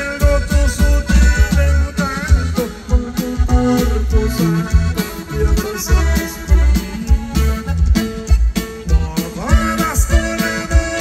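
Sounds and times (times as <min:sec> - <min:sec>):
accordion melody: 0:00.0 - 0:11.0
bass and drums: 0:00.0 - 0:11.0.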